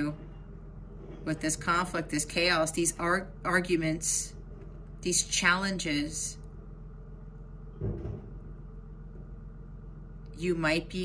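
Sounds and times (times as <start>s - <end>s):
low background hum: 0.0s - 11.0s
soft low bump: 7.8s - 8.5s.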